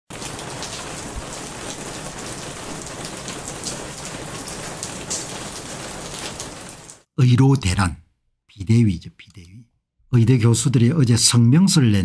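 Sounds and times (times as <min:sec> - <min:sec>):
louder raindrops: 0:00.1 - 0:07.1
steady rain: 0:00.1 - 0:07.1.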